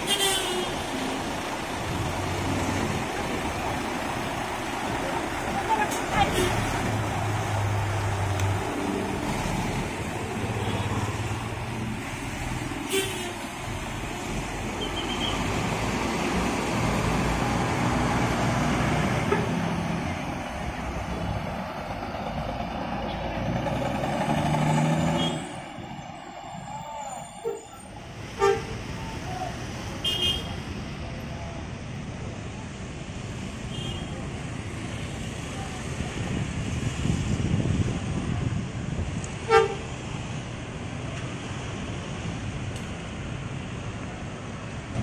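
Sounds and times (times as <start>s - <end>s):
diesel bus engines idling: 0.0s - 29.9s
traffic noise: 0.0s - 45.0s.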